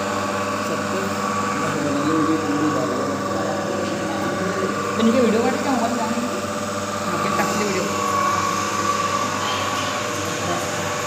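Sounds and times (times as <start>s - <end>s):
electric motor humming and whining: 0.0s - 11.0s.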